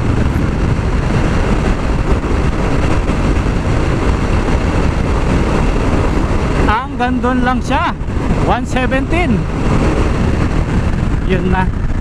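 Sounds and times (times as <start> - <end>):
wind on microphone: 0.0 - 12.0.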